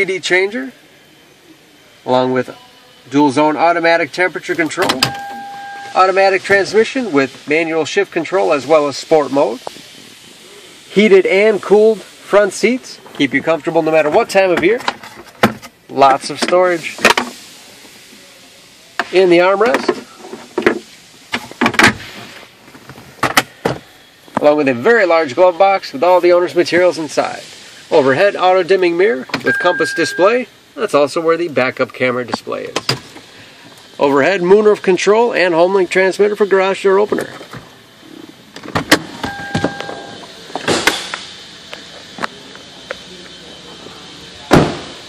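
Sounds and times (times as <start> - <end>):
electronic beep: 5.0 - 6.0, 29.4 - 30.4, 39.2 - 40.2
cabin hiss: 5.8 - 45.0.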